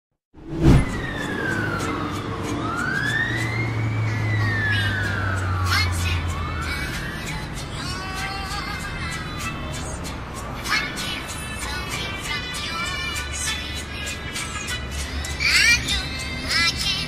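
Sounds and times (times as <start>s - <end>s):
siren-like wail: 0.6s - 7.9s.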